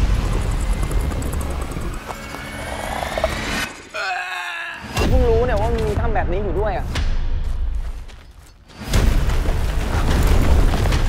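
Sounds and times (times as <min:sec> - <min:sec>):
deep rumble: 0:00.0 - 0:03.7.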